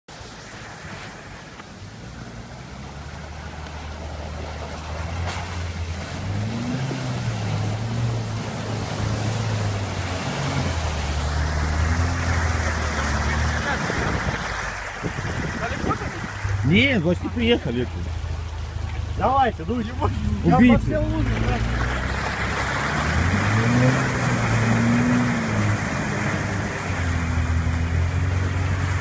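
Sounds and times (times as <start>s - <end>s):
off-road vehicle engine revving: 2.2s - 29.0s.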